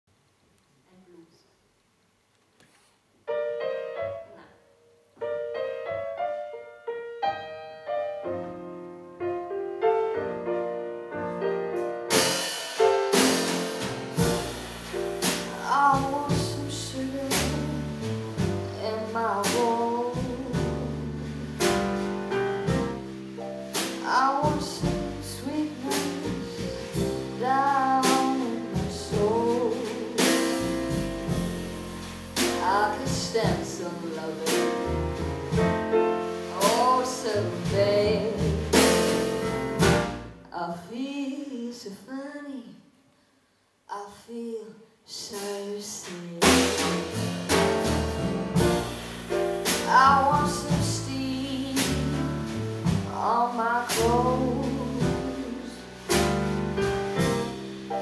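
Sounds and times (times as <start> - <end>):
blues piano: 3.3 - 4.6, 5.2 - 40.4, 45.4 - 58.0
drums: 8.3 - 42.0, 45.1 - 58.0
bass guitar: 13.2 - 40.4, 46.4 - 58.0
woman singing: 15.5 - 21.2, 24.0 - 30.6, 32.4 - 35.0, 36.6 - 38.6, 40.5 - 42.8, 43.9 - 47.9, 49.7 - 52.4, 53.1 - 55.8.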